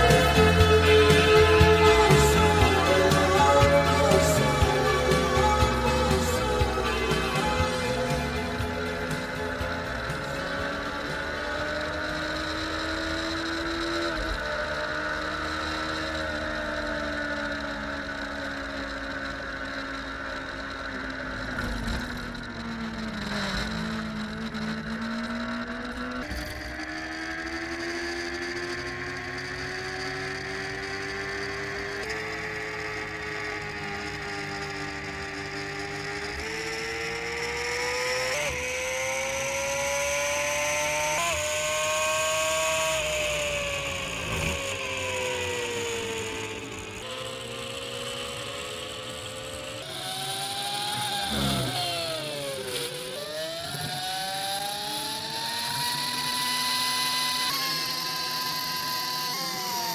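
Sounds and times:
racing sidecar engine revving: 0:00.0 - 0:59.9.

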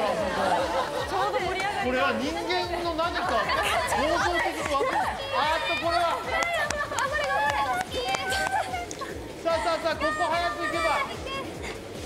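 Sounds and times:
young women shouting excitedly: 0:03.7 - 0:09.0, 0:09.6 - 0:11.6.

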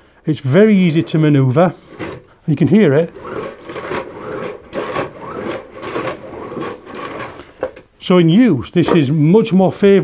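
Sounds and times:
carpet sweeper whirring and rattling: 0:00.8 - 0:07.8.

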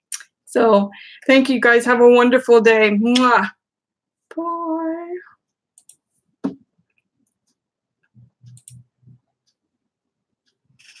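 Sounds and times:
clicks: 0:05.8 - 0:06.0, 0:07.2 - 0:09.6.

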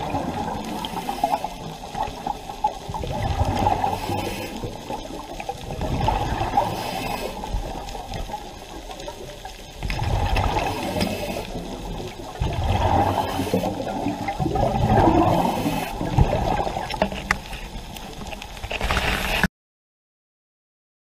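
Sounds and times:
muffled underwater rushing water: 0:00.0 - 0:19.5
faint clicks: 0:06.7 - 0:12.3, 0:16.8 - 0:19.5.

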